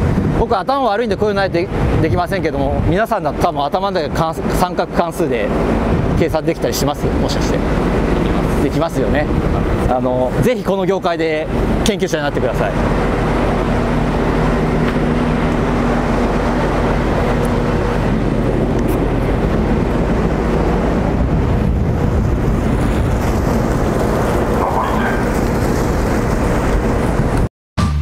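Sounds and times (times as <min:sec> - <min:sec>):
ship machinery hum: 0:00.0 - 0:27.5
wind and sea rushing: 0:00.0 - 0:27.5.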